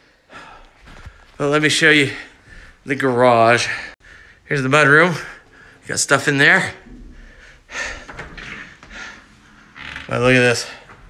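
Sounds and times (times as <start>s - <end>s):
man breathing: 0.0s - 1.4s, 2.0s - 2.9s, 3.6s - 4.5s, 5.1s - 5.9s, 6.8s - 10.0s.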